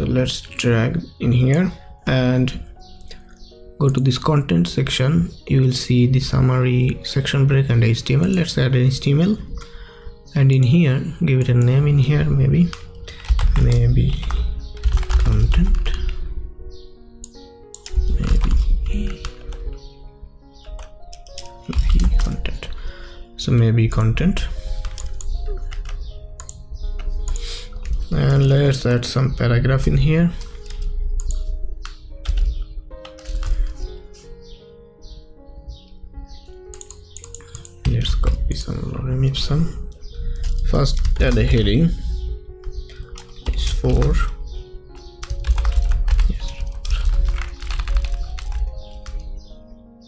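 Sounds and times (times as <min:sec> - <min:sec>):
quiet background music: 0:00.0 - 0:50.0
keyboard and mouse clicks: 0:11.5 - 0:16.2, 0:17.2 - 0:19.9, 0:20.6 - 0:22.8, 0:24.0 - 0:28.4, 0:30.3 - 0:34.3, 0:35.7 - 0:38.6, 0:39.9 - 0:42.0, 0:42.6 - 0:49.5.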